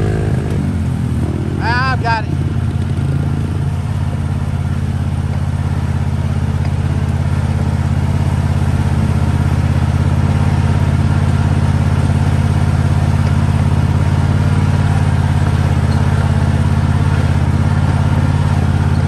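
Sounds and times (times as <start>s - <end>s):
riding lawn mower engine: 0.0s - 19.0s.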